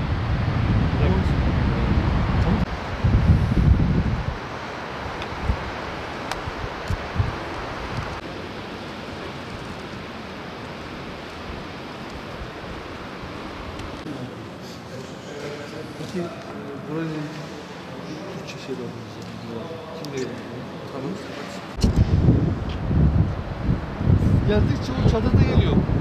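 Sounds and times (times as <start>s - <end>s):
wind buffeting microphone: 0.0s - 8.2s, 21.7s - 26.0s
wind rushing: 0.0s - 8.2s, 21.7s - 26.0s
distant flowing river water: 0.0s - 18.4s.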